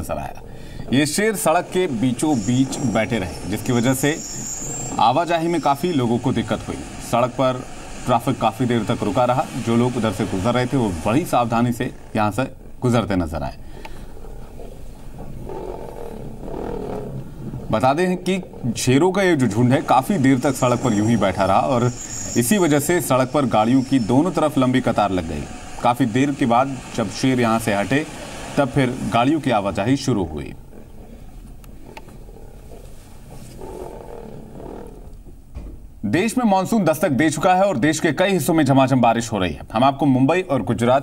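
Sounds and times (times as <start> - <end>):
lions growling: 0.4 - 35.4.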